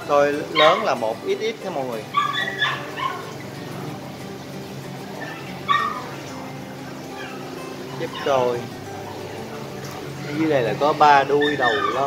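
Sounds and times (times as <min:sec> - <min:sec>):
small dog yipping: 0:00.5 - 0:01.0, 0:02.1 - 0:03.4, 0:05.2 - 0:06.2, 0:07.1 - 0:09.2, 0:11.2 - 0:12.0.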